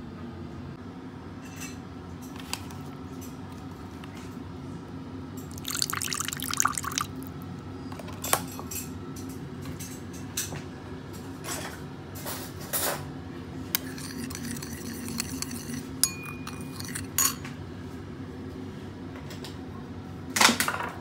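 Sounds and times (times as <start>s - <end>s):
steady low hum: 13.0s - 18.6s
metal spoon clinking in bowl: 13.8s - 17.4s.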